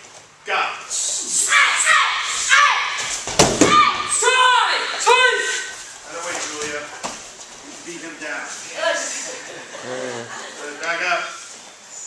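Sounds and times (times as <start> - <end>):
loud kiai shouts: 0.9 - 5.8
bodies thudding on a mat: 3.0 - 4.1.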